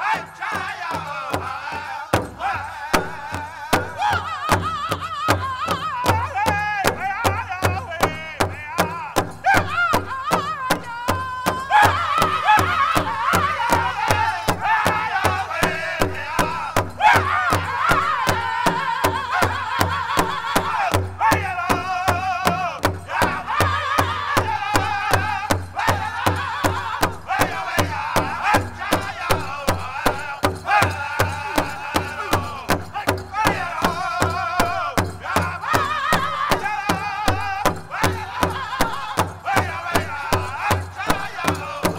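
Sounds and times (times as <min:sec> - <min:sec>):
large drum beating: 0:00.0 - 0:41.9
men singing high-pitched: 0:00.0 - 0:41.9.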